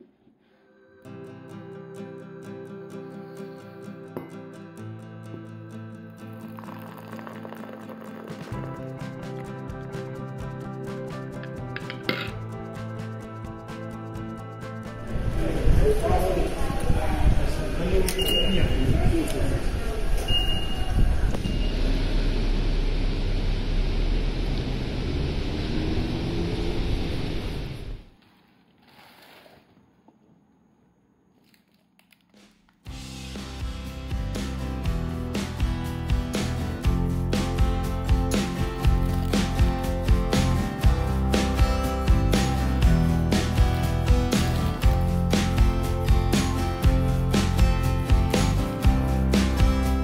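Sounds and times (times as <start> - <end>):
background music: 0.7 - 18.3, 32.9 - 50.0
liquid poured into glass mug: 6.1 - 9.5.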